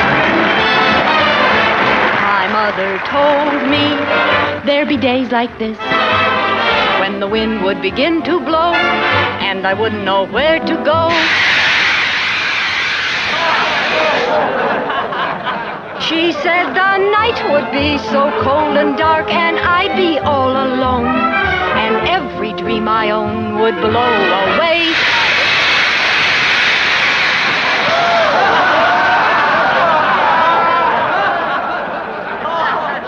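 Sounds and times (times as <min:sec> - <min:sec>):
audience applauding and cheering: 0:00.0 - 0:04.6, 0:11.1 - 0:14.8, 0:24.9 - 0:33.0
shouting and laughing voices: 0:13.3 - 0:17.6, 0:27.8 - 0:33.0.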